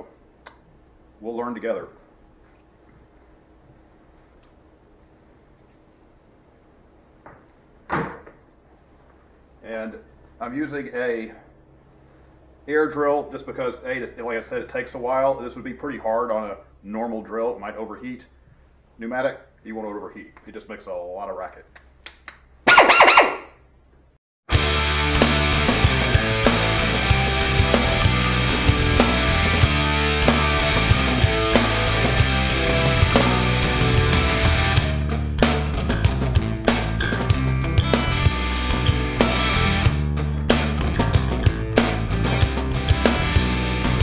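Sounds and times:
faint steady hum: 0.0s - 24.2s
rock music with steady beat: 24.5s - 44.0s.

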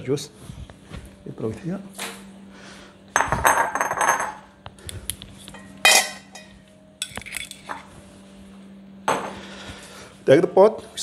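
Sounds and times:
dishes clinking: 3.2s - 4.5s, 5.6s - 7.9s.

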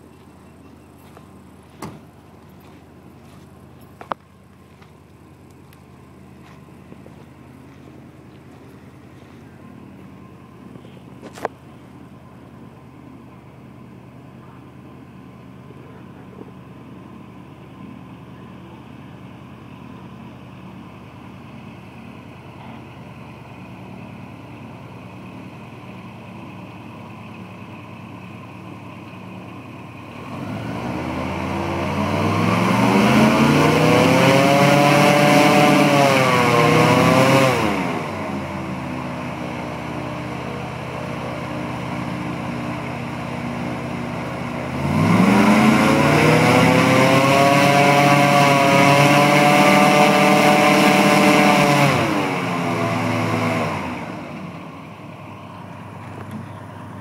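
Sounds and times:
airboat engine and propeller: 30.5s - 57.0s.

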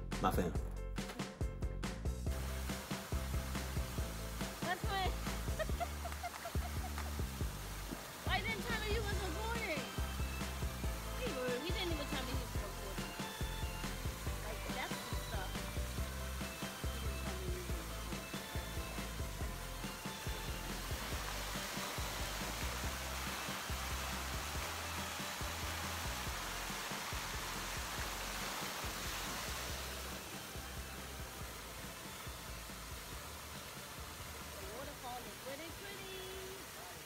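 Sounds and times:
background music with bass line: 0.0s - 34.8s
water fountain jets splashing: 2.3s - 37.0s.

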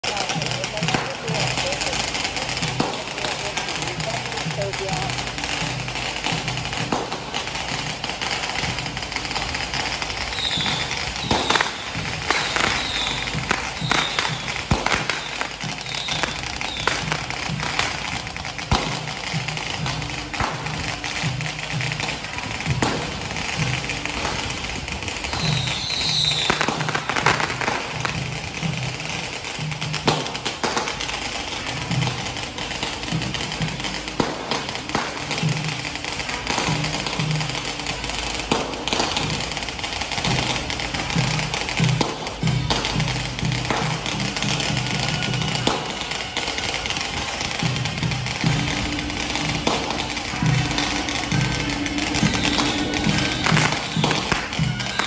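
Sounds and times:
big drum beating: 0.0s - 55.0s
cymbals and gongs clashing: 0.0s - 55.0s
sharp cracks: 0.0s - 55.0s.

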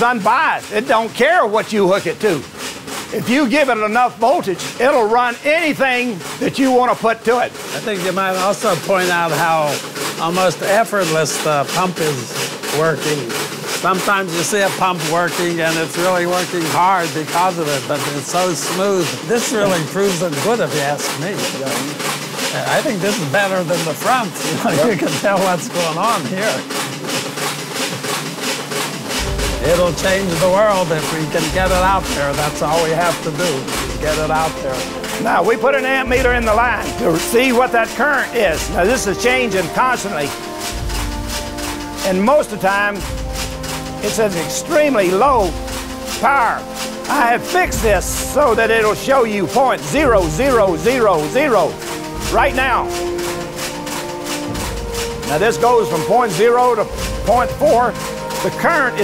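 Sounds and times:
motor driving geared pump: 0.0s - 59.0s
rapid even ticking: 0.0s - 59.0s.

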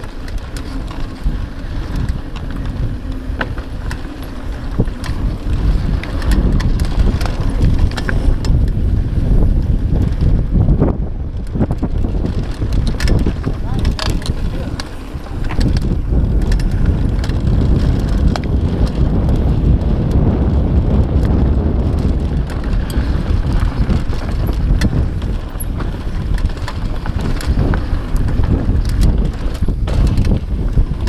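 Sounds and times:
bike clicks and rattles: 0.0s - 31.0s
tyres on dirt: 0.0s - 31.0s
wind rumbling on microphone: 0.0s - 31.0s.

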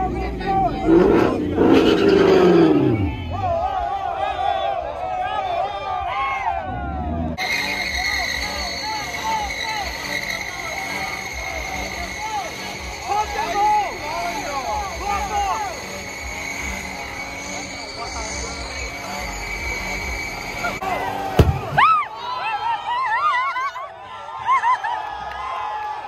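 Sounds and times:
tyres squealing: 0.0s - 3.5s, 7.4s - 22.0s
crowd voices: 0.0s - 26.0s.

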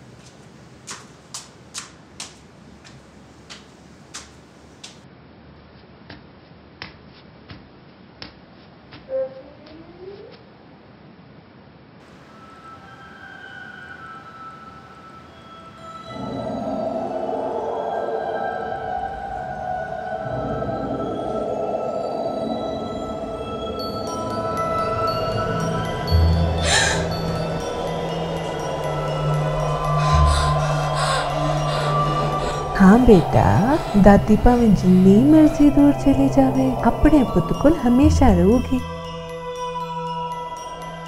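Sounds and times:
footsteps climbing stairs: 0.2s - 5.0s
sustained drone of held tones: 12.0s - 41.0s
low rumble: 16.1s - 39.0s.

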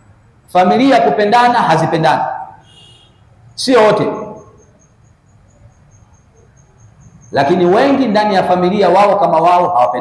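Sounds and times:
man's voice: 3.6s - 4.4s, 7.4s - 10.0s
faint high-pitched chirp: 4.0s - 7.8s.

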